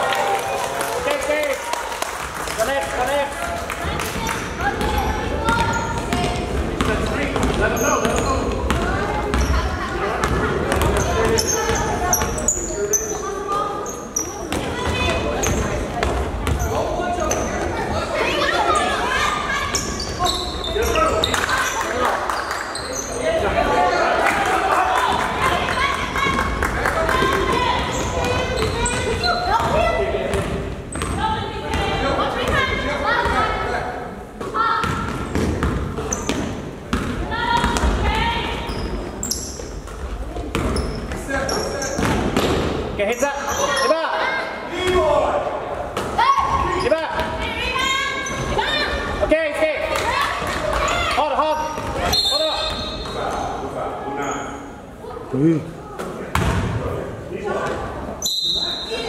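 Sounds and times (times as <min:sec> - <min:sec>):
voices and shouts echoing: 0:00.0 - 0:59.0.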